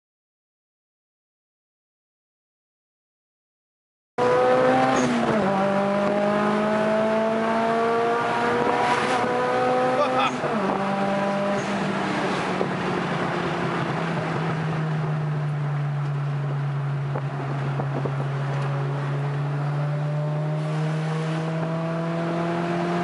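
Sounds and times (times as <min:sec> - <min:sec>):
car engine accelerating: 0:04.2 - 0:23.0.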